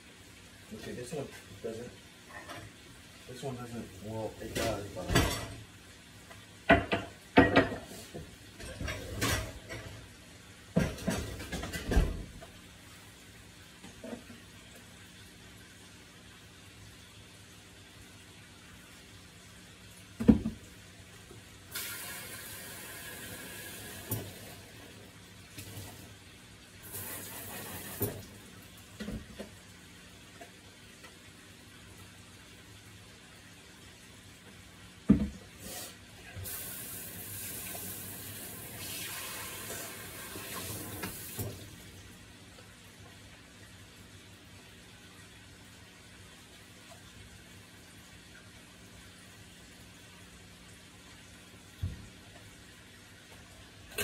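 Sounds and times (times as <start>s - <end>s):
tap running into sink: 20.2s - 20.6s, 27.0s - 28.3s, 35.1s - 35.4s, 40.4s - 41.6s.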